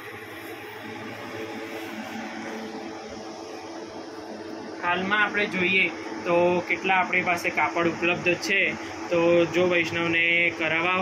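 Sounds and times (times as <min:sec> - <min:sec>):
room tone hum and hiss: 0:00.0 - 0:11.0.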